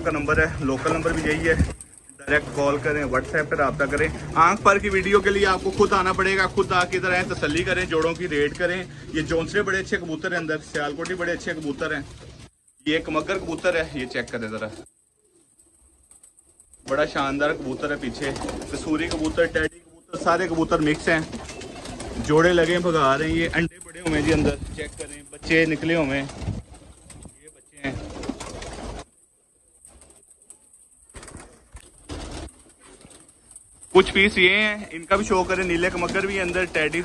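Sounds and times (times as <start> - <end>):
rustling bursts: 0.0 - 9.4, 10.3 - 37.0
pigeons cooing: 13.4 - 22.9.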